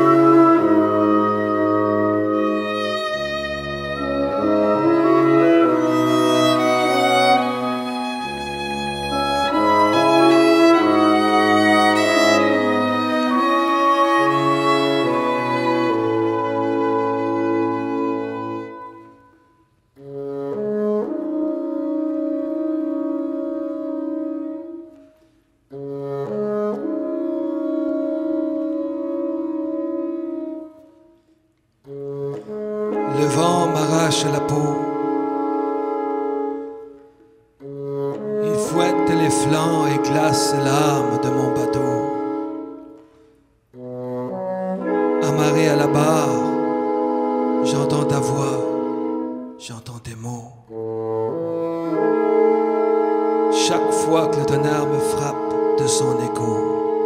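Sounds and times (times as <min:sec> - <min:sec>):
fiddle: 0:00.0 - 0:19.0
bassoon: 0:00.0 - 0:57.0
flute: 0:00.0 - 0:57.0
french horn: 0:00.0 - 0:57.0
wind ensemble music: 0:00.0 - 0:57.0.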